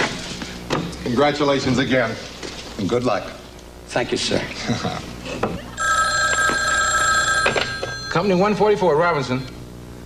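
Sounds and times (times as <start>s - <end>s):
people laughing: 4.5s - 5.8s
telephone bell ringing: 5.8s - 9.5s.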